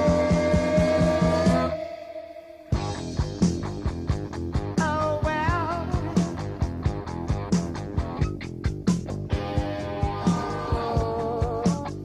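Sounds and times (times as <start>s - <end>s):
rock band playing: 0.0s - 1.8s, 2.7s - 12.0s.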